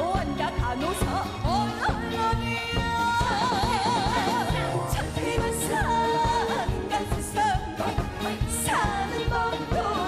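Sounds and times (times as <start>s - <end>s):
woman singing into microphone: 0.0s - 10.0s.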